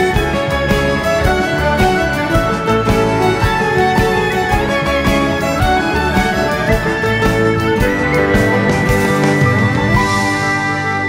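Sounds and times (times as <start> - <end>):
cello: 0.0 - 11.0
piano: 0.0 - 11.0
steady beat: 0.0 - 11.0
violin melody: 0.0 - 11.0.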